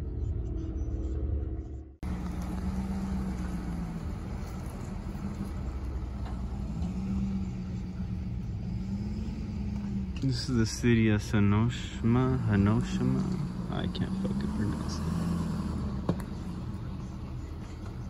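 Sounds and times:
car engine rumble from cabin: 0:00.0 - 0:18.0.

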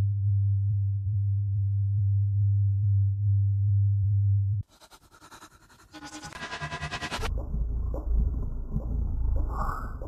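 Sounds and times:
low synthesizer drone: 0:00.0 - 0:10.0.

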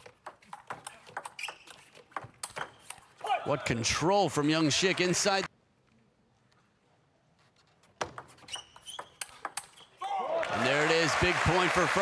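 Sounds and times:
shoe squeak: 0:00.7 - 0:03.3, 0:07.4 - 0:10.0
table tennis ball clicking: 0:08.0 - 0:09.8.

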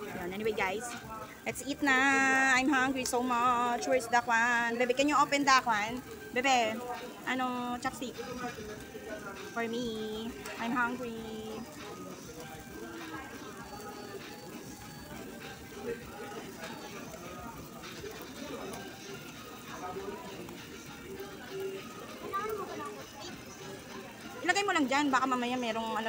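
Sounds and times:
background music: 0:00.0 - 0:26.0
indistinct diners chatter: 0:00.0 - 0:26.0.

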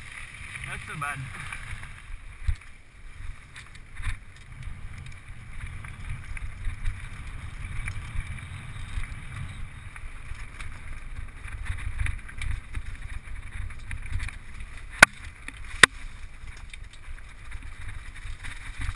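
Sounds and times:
wind rumbling on microphone: 0:00.0 - 0:18.9.

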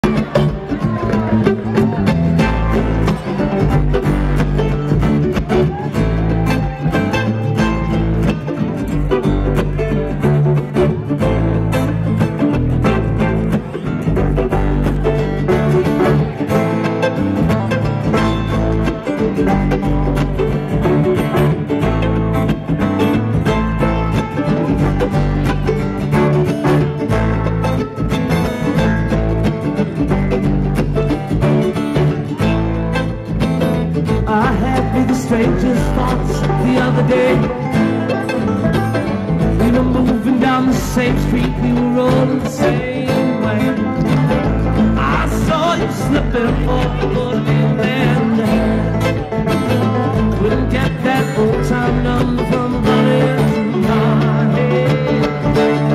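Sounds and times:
bluegrass string band playing: 0:00.0 - 0:55.9.

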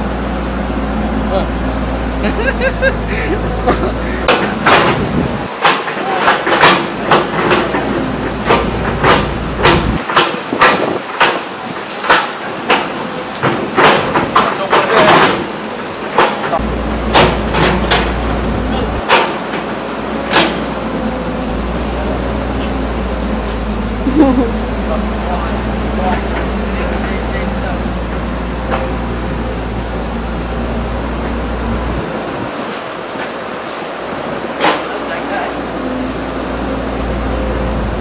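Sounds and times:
sharp knocks: 0:04.2 - 0:15.5, 0:16.1 - 0:18.4, 0:19.0 - 0:20.8.

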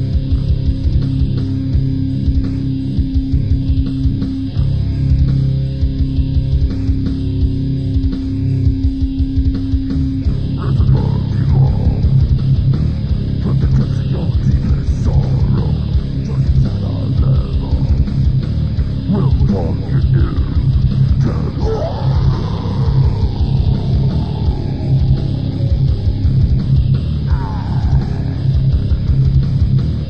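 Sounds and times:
heavy band playing guitars and bass: 0:00.0 - 0:30.0.

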